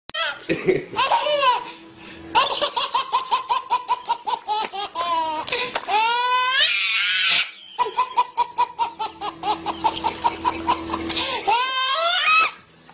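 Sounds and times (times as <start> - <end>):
baby laughing: 0.2 - 1.8, 2.4 - 12.5
baby squealing: 2.4 - 12.6.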